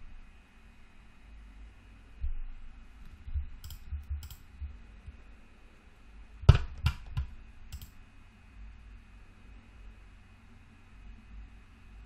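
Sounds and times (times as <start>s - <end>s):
keyboard and mouse clicks: 3.0s - 4.6s, 6.5s - 8.0s.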